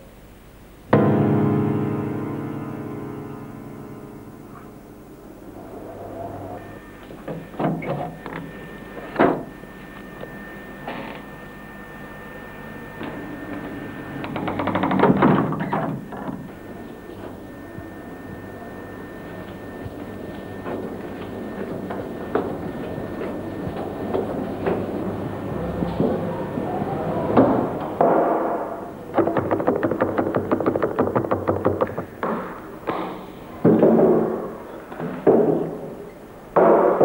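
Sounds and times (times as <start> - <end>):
faint high-pitched tone: 16.2 - 22.2
knocks and bumps: 29.2 - 33.1.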